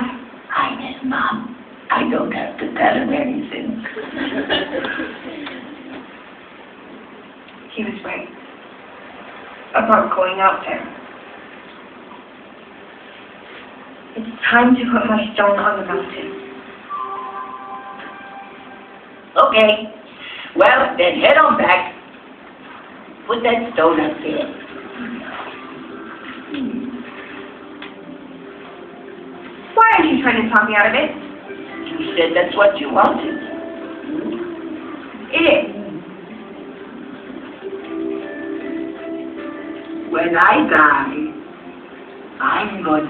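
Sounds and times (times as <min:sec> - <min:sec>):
faint steady hiss: 0:00.0 - 0:43.0
soft low film soundtrack: 0:00.0 - 0:43.0
soft sustained background tones: 0:14.8 - 0:22.0, 0:22.8 - 0:43.0.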